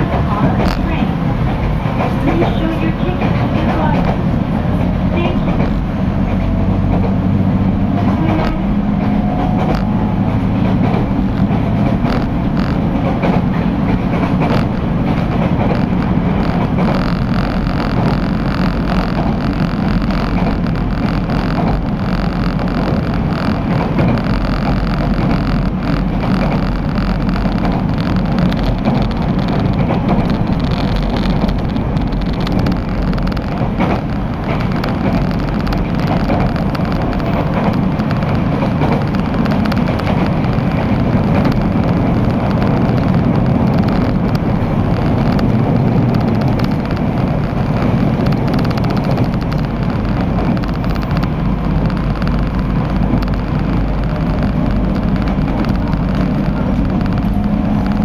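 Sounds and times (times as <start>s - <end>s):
train wheels rumbling on rails: 0.0s - 58.0s
faint clicks: 8.0s - 58.0s.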